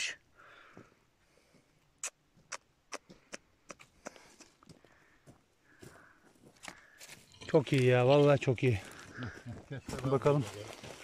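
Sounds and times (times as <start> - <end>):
dry twigs and leaves crackling: 6.4 - 11.0.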